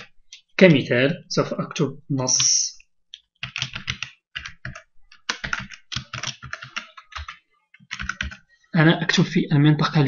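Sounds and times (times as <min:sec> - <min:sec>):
typing on computer keyboard: 0:03.2 - 0:08.4.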